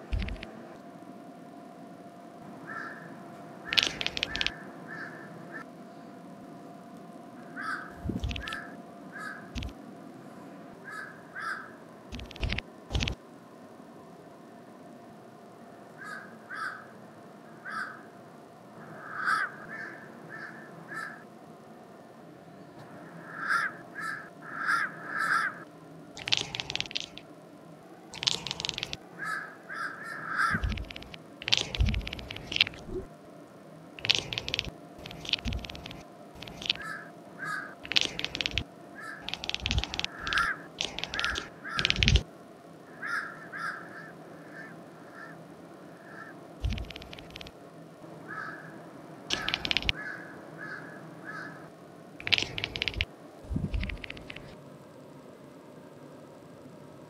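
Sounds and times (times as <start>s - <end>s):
crows cawing: 2.6s - 5.7s, 7.4s - 9.6s, 10.8s - 11.8s, 16.0s - 18.1s, 18.8s - 21.3s, 23.0s - 25.6s, 28.2s - 32.7s, 36.6s - 42.2s, 42.9s - 46.4s, 48.2s - 53.0s
cat chattering: 3.7s - 4.6s, 7.9s - 8.7s, 26.2s - 27.2s, 28.2s - 29.0s, 30.4s - 33.1s, 34.0s - 42.2s, 46.6s - 47.5s, 49.3s - 50.0s, 52.2s - 54.5s.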